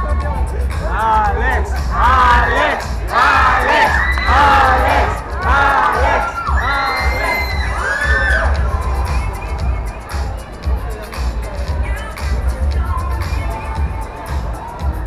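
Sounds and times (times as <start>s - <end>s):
bass beat music: 0.0s - 15.0s
crowd screaming and cheering: 0.7s - 15.0s.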